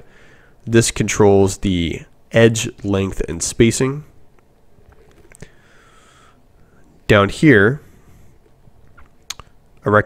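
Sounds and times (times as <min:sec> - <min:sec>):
faint short clicks: 0:09.0 - 0:09.6.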